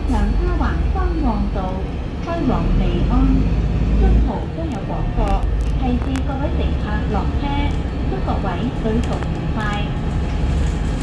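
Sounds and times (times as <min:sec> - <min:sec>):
people talking: 0:00.0 - 0:10.0
bus engine rumble: 0:00.0 - 0:11.0.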